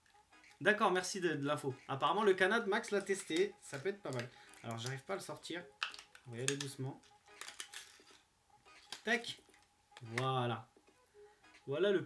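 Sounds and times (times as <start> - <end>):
plastic packaging rustling: 2.8 - 10.2.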